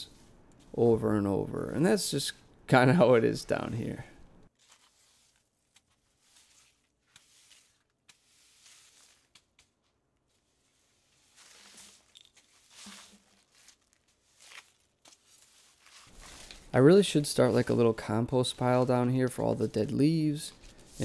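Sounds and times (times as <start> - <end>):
broom sweeping dry leaves: 4.6 - 9.7, 10.3 - 19.1, 20.5 - 21.0.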